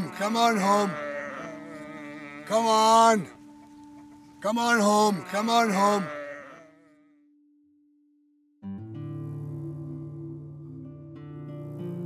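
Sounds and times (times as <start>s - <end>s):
faint sheep bleat: 0.0s - 7.3s
steady low tone: 8.6s - 12.0s.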